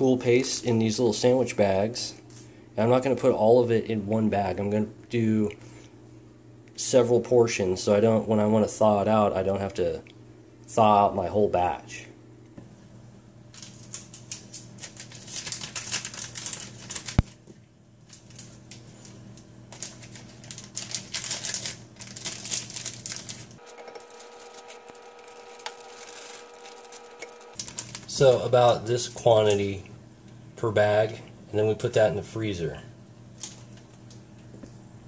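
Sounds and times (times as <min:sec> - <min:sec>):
faint steady hum: 0:00.0 - 0:35.0
plastic bag crinkling: 0:13.5 - 0:28.5.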